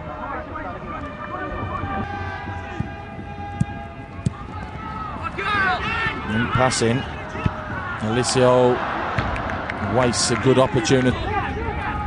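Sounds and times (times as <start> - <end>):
players and spectators shouting: 0.0 - 12.0.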